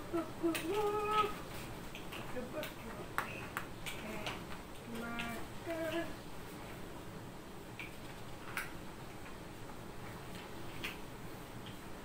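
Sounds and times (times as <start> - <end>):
faint small clicks: 7.7 - 9.4, 10.0 - 11.9.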